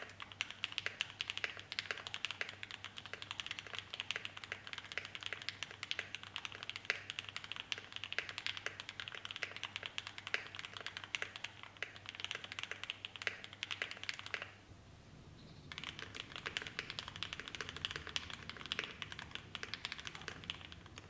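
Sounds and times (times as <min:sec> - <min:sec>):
fast typing on mechanical keyboard: 0:00.0 - 0:14.6, 0:15.7 - 0:21.0.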